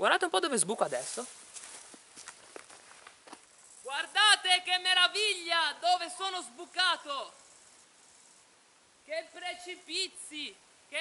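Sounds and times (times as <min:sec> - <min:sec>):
footsteps on leafy dirt path: 0:00.5 - 0:04.2.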